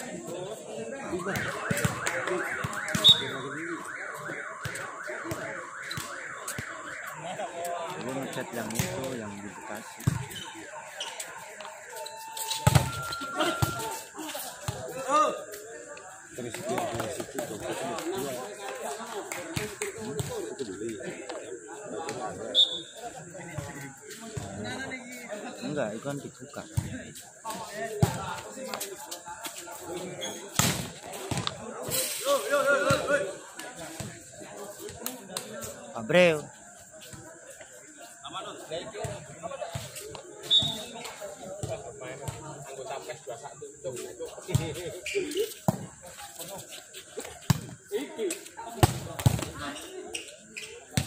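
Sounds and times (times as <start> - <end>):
players and spectators voices: 0.0 - 51.0
rising electronic alarm tone: 1.1 - 14.3
volleyball strikes: 1.2 - 9.2.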